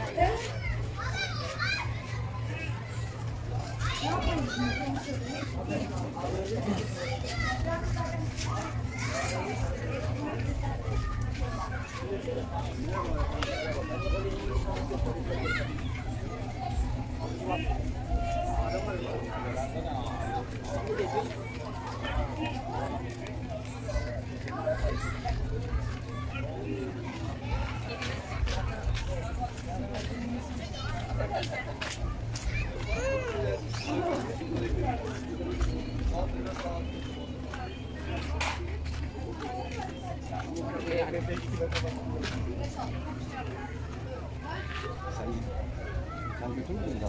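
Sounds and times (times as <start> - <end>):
children talking and calling out: 0.0 - 47.0.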